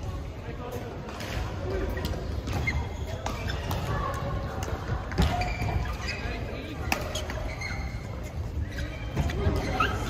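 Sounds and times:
background chatter: 0.0 - 10.0
shoes squeaking on court: 1.8 - 10.0.

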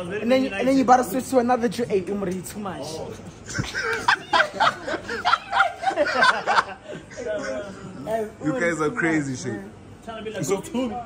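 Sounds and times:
men talking: 2.6 - 11.0
men laughing: 3.3 - 8.4.

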